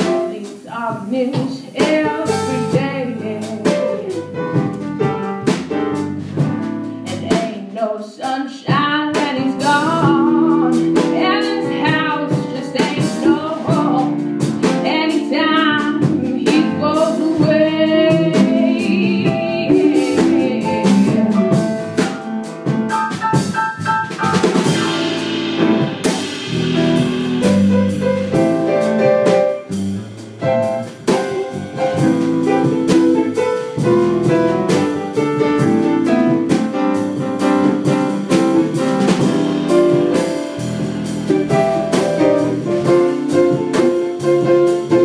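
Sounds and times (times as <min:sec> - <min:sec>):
small jazz band playing: 0:00.0 - 0:45.0.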